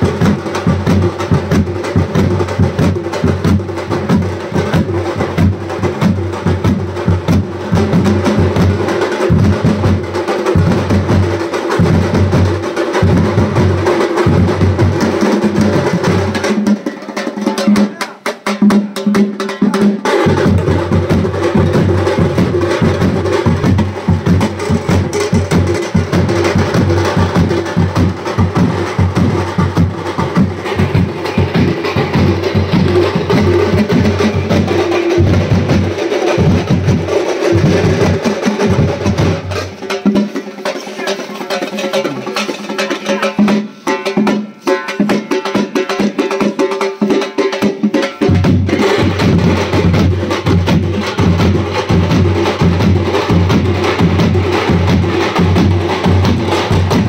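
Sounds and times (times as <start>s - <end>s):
deep barrel drums beaten fast: 0.0s - 57.0s.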